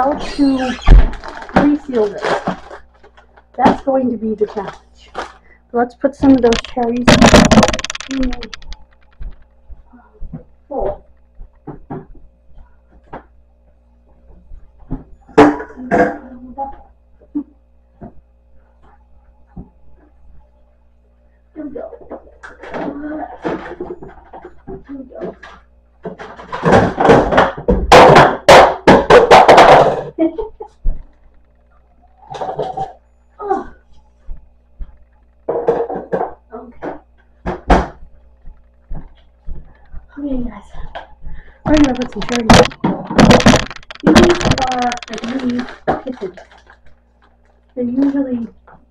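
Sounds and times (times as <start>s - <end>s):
kitchen rustles and clatter: 0.0s - 5.5s, 6.2s - 9.5s, 21.9s - 30.1s, 40.7s - 48.4s
small kitchen knocks: 26.0s - 30.1s, 35.5s - 38.1s, 40.8s - 46.0s.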